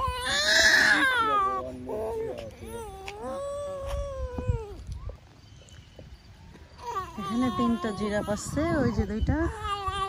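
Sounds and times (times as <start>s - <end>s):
toddler crying wail: 0.0s - 4.9s, 6.8s - 10.0s.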